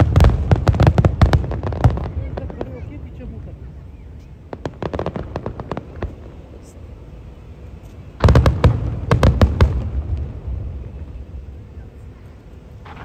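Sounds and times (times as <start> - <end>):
fireworks booming: 0.0 - 6.7, 8.0 - 13.0
fireworks crackling: 0.0 - 13.0.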